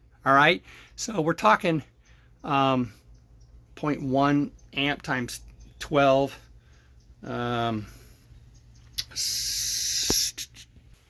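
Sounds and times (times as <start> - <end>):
loud hiss: 9.0 - 10.6.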